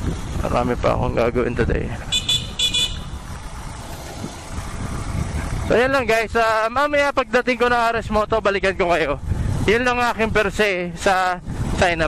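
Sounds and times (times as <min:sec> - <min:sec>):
motorcycle engine cruising: 0:00.0 - 0:08.0
road and wind noise: 0:00.0 - 0:12.0.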